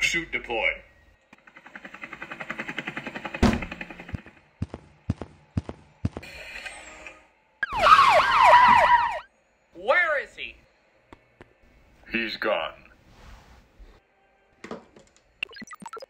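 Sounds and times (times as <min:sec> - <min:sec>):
rapid whirring pulse: 0:01.4 - 0:06.3
police sirens wailing: 0:07.6 - 0:09.3.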